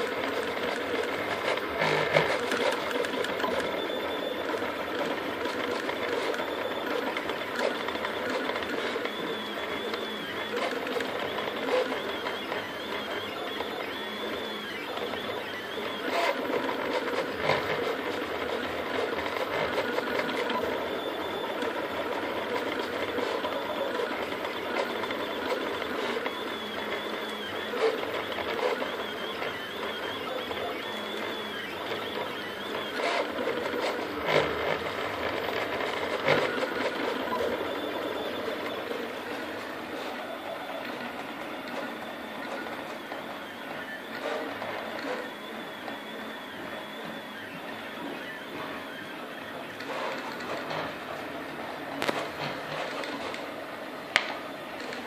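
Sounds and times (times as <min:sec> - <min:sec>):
stepper motors whining: 0:00.0 - 0:55.0.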